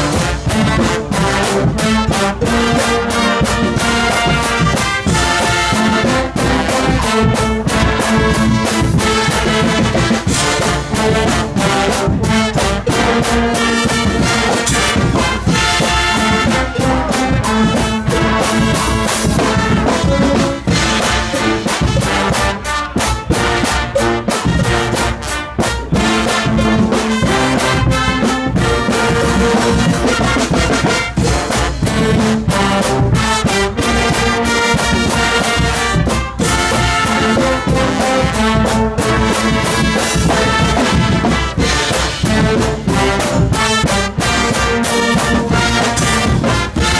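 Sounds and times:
brass band playing loud: 0.0 - 46.9
drum kit with cymbals: 0.0 - 46.9.

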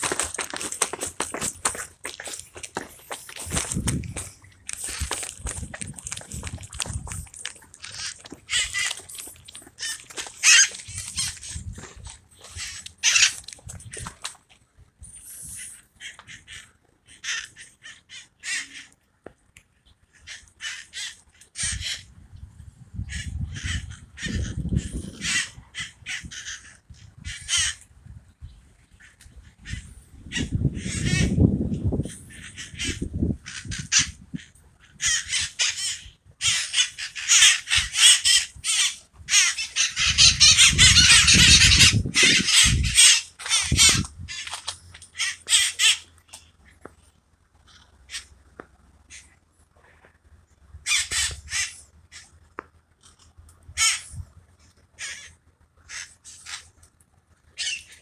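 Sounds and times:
parakeets screeching: 0.0 - 14.1, 15.2 - 18.9, 20.2 - 22.1, 23.1 - 27.8, 29.0 - 31.4, 32.0 - 46.1, 50.8 - 52.3, 53.8 - 54.2, 55.0 - 56.7, 57.6 - 58.0.

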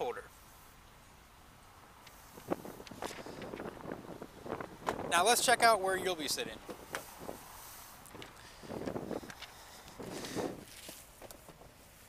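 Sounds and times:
wind on microphone: 2.1 - 10.8
footsteps on pavement: 6.6 - 11.8
rustling handling noise: 6.6 - 12.0.

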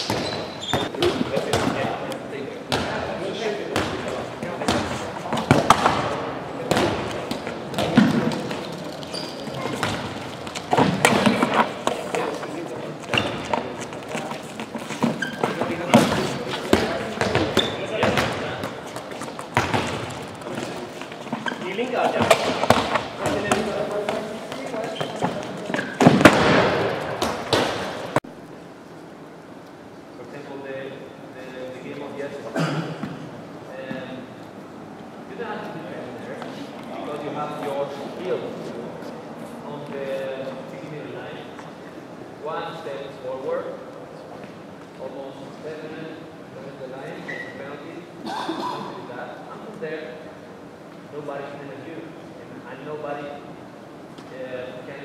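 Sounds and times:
players talking and calling: 0.0 - 28.2
handballs bouncing on wooden floor: 3.8 - 6.1, 6.7 - 12.3, 13.1 - 28.2
ball shots at goal: 26.0 - 28.2.

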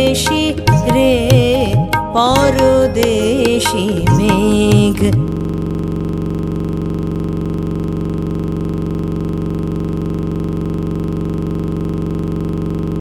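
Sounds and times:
steady electronic drone: 0.0 - 13.0.

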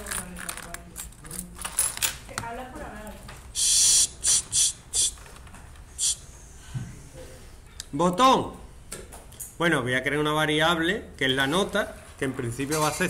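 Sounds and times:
person shushing: 3.6 - 5.2, 6.0 - 6.4.

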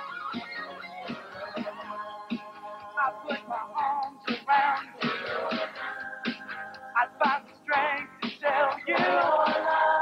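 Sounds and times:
young singers singing: 7.7 - 10.0
drum beat: 8.2 - 9.8.

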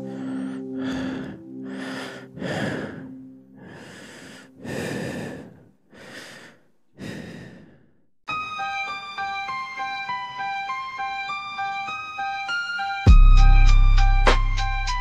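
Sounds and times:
low synth chord: 0.0 - 3.6, 13.1 - 15.0
heavy breathing: 0.0 - 8.0.

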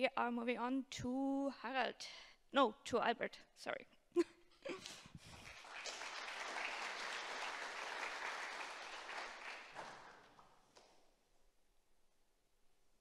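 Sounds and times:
audience applauding: 5.3 - 10.6.

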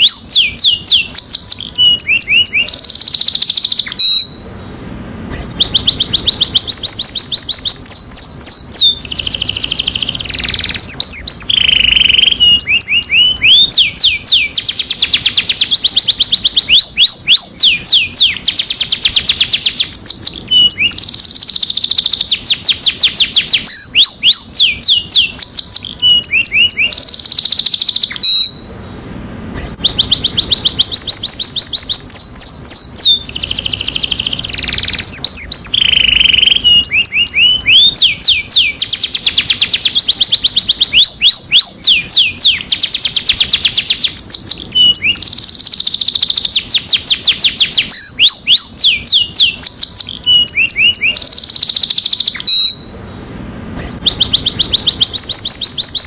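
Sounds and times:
canary singing trills: 0.0 - 56.0.

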